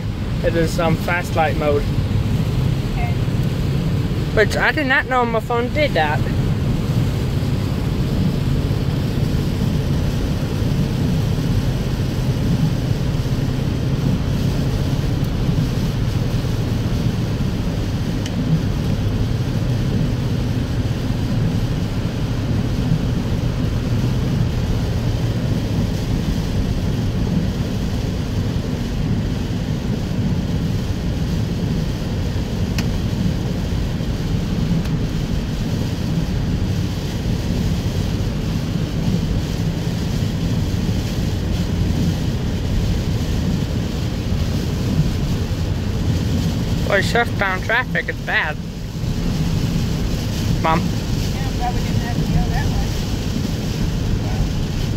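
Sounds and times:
low car drone: 0.0 - 54.9
rain on car: 0.0 - 54.9
tyres on wet pavement: 0.0 - 54.9.

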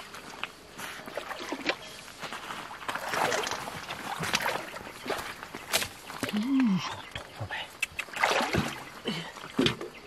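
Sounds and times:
stream water splashing: 1.0 - 6.4, 7.9 - 9.0.

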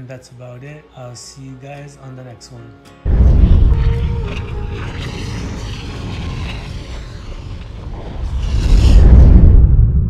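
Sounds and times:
deep cinematic rumble: 3.1 - 10.0.

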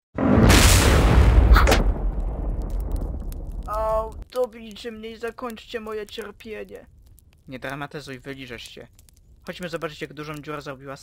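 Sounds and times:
cartoon explosion blast: 0.2 - 3.7
low rumble: 0.2 - 4.2
sharp crack: 0.2 - 10.6.

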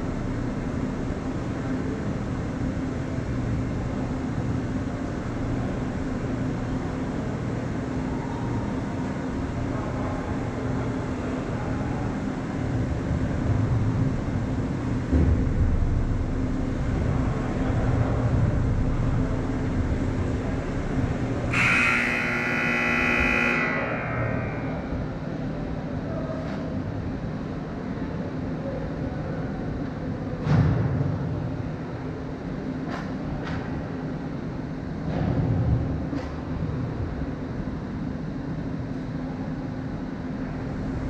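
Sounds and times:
steady low hum: 0.0 - 41.0.

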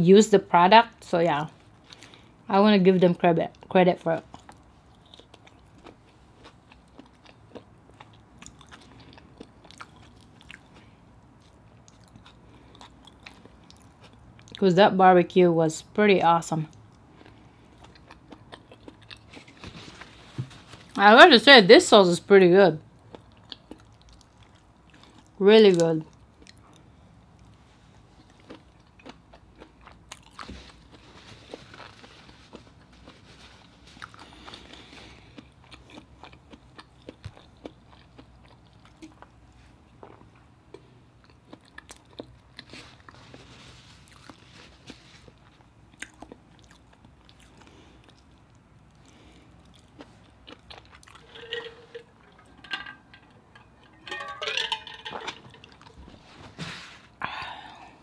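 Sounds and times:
person chewing: 4.2 - 14.6, 16.7 - 21.0, 23.0 - 25.4, 26.1 - 54.4.

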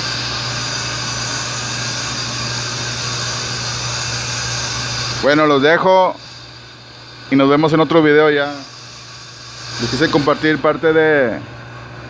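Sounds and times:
machinery whirring: 0.0 - 12.0.

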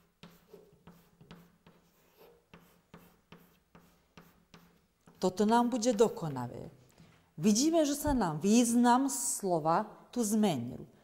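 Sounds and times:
chalk writing on a chalkboard: 0.0 - 6.3.

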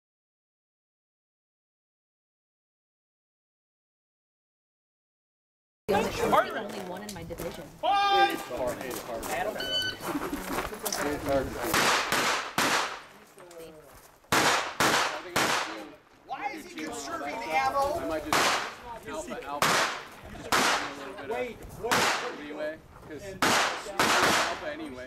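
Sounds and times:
rifle shots with echo: 11.7 - 13.2, 14.3 - 15.9, 18.3 - 18.8, 19.6 - 21.0, 21.9 - 22.5, 23.4 - 24.7.

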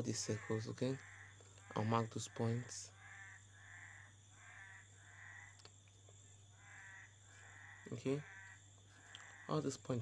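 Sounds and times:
short animal calls: 6.5 - 9.6.

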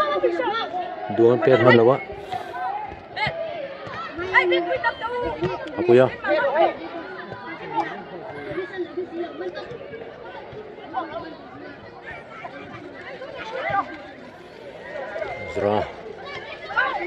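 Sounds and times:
voices talking and calling out: 0.0 - 17.0.

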